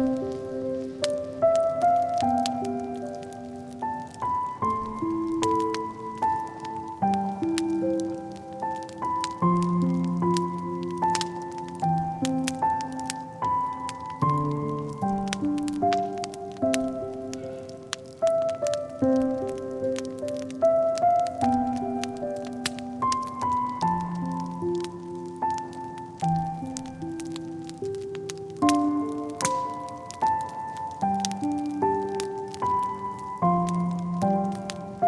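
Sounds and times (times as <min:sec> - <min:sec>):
slow solo piano: 0:00.0 - 0:35.0
wood fire crackling: 0:00.0 - 0:35.0.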